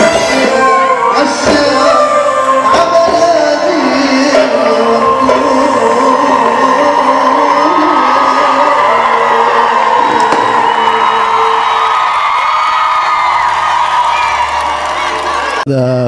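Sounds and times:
live band playing: 0:00.0 - 0:12.6
crowd cheering and whooping: 0:00.0 - 0:15.7.

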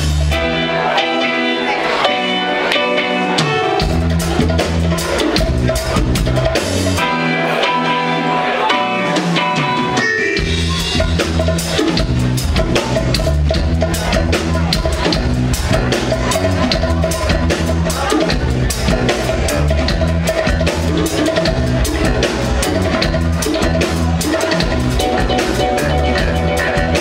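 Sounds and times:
bass and drum kit: 0:00.0 - 0:27.0
keyboard: 0:00.0 - 0:27.0
reggae band playing: 0:00.0 - 0:27.0.

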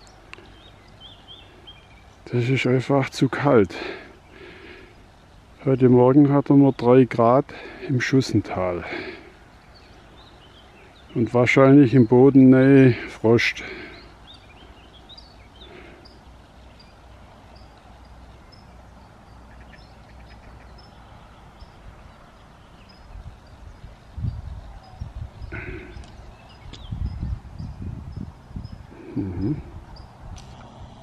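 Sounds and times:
faint birdsong: 0:00.0 - 0:31.0
wind rumbling on microphone: 0:20.6 - 0:31.0.

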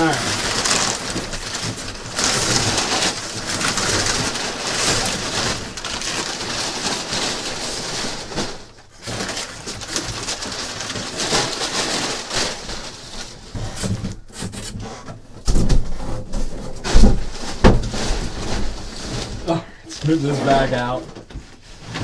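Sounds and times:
plastic bags and paper crinkling: 0:00.0 - 0:22.0.

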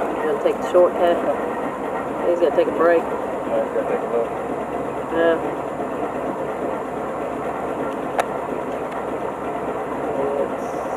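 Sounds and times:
off-road engine running: 0:00.0 - 0:10.9.

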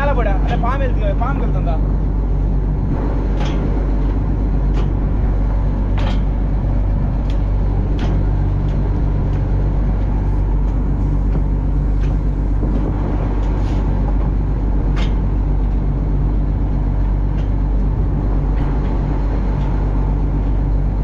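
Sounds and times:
boat engine droning: 0:00.0 - 0:21.0.

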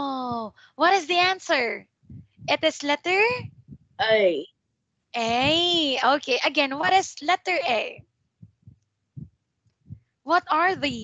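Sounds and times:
child's voice over online call: 0:00.0 - 0:01.8, 0:02.4 - 0:04.4, 0:05.2 - 0:08.0, 0:10.3 - 0:11.0.

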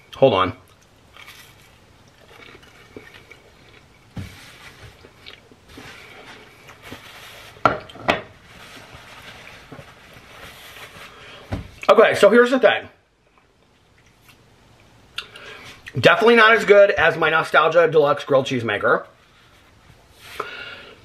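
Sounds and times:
chewing toasted sandwich: 0:00.7 - 0:04.2.

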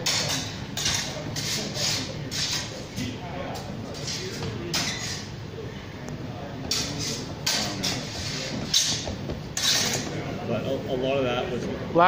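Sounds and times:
low background voices: 0:00.0 - 0:12.0
steel blades scraping: 0:09.6 - 0:10.1.

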